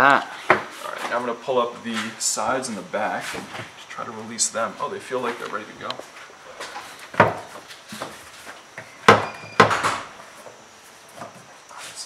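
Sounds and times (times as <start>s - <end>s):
hard plastic knocks and creaks: 8.8s - 10.1s
short squeak: 8.9s - 9.7s.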